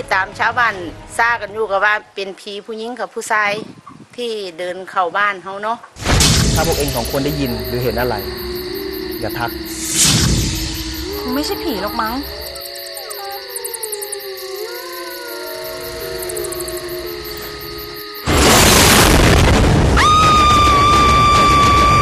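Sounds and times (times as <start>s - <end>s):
sudden loud crash: 6.0s - 8.4s, 9.3s - 11.1s, 18.2s - 22.0s
steady high-pitched tone: 6.6s - 18.4s
eerie sliding tones: 6.6s - 18.5s.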